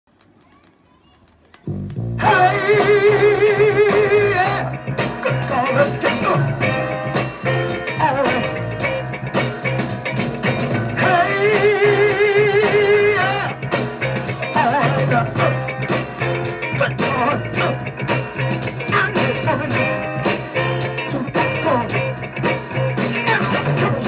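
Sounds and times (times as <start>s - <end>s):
soul-funk record playing: 1.6s - 24.0s.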